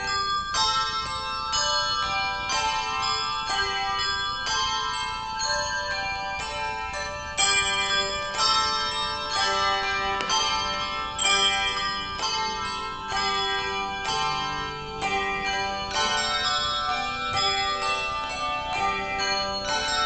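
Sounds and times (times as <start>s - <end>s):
handbells ringing a tune: 0.0s - 20.0s.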